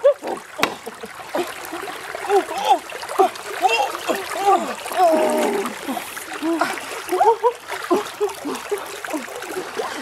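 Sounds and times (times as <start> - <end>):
splashing in shallow water: 0.0 - 10.0.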